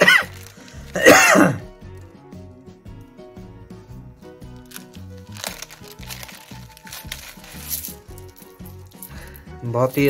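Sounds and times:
man coughing harshly: 0.0s - 0.3s, 0.9s - 1.7s
soft background music: 0.0s - 10.0s.

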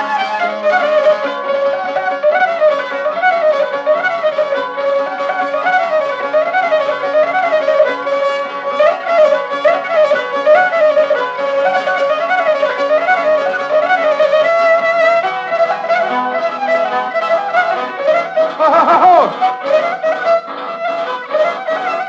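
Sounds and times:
bowed string melody: 0.0s - 22.0s
rhythmic accompaniment: 0.0s - 22.0s.

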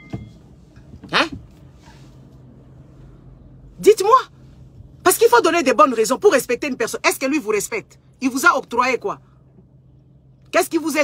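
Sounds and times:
low car cabin hum: 0.0s - 11.0s.

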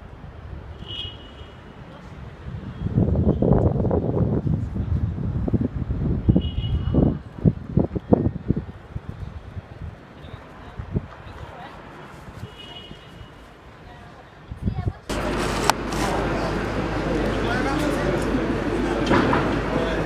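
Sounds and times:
low city rumble: 0.0s - 20.0s
wind buffeting microphone: 2.0s - 16.3s.

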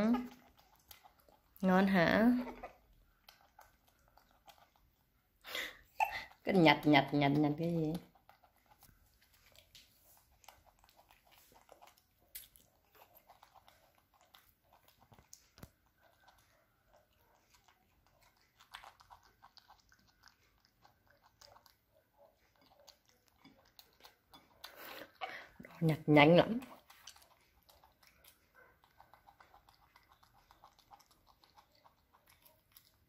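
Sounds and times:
monkey chewing cauliflower: 0.0s - 33.0s.

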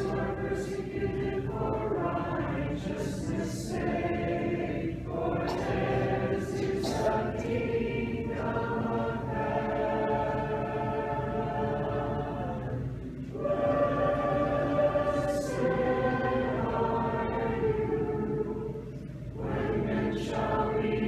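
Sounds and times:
choir chanting a cappella: 0.0s - 21.0s.

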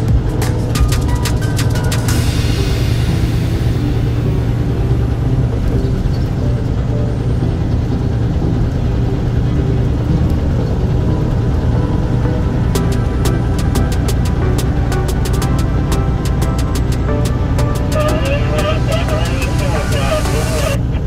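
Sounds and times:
car engine and tyre noise: 0.0s - 21.0s
music playing: 0.0s - 21.0s.

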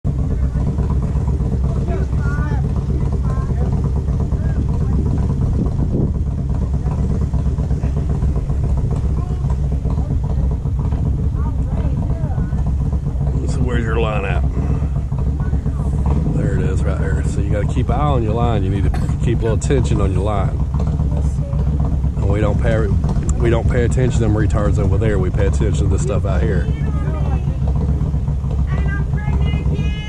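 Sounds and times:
steady low rumble: 0.0s - 30.0s
faint talking voices: 0.1s - 30.0s.

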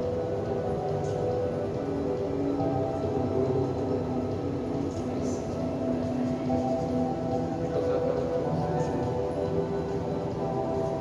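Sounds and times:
ambient music of long held notes: 0.0s - 11.0s
steady low hum: 0.0s - 11.0s.

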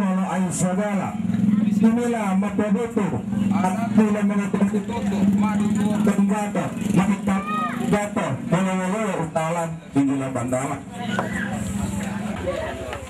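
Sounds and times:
voices talking: 0.6s - 13.0s.

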